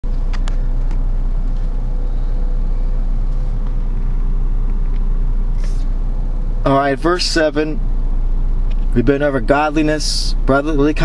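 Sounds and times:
constant hum: 0.0s - 11.0s
steady low rumble: 0.0s - 11.0s.

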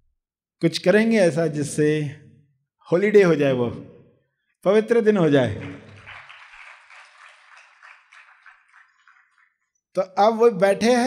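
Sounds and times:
faint applause: 5.5s - 9.6s.

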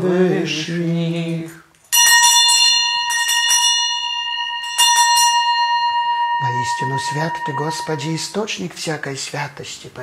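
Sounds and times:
altar bell ringing: 1.9s - 8.6s.

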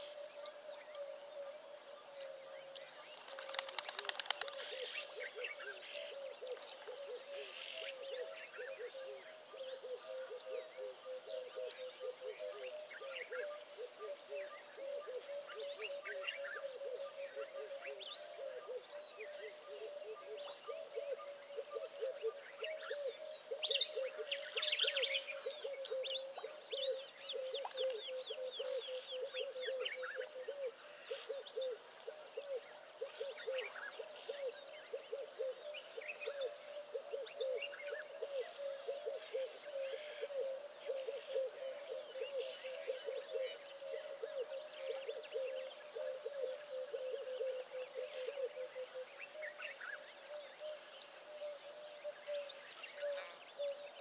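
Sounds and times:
high insect drone: 0.0s - 54.0s.

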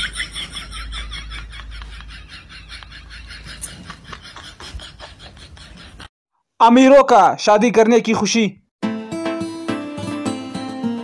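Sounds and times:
man giggling: 0.0s - 6.1s.

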